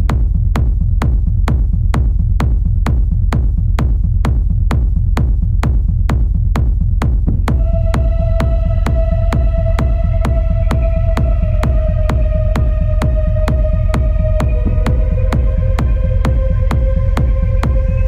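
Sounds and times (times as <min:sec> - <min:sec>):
heavy bass beat: 0:00.0 - 0:18.0
held synth tone: 0:07.5 - 0:18.0.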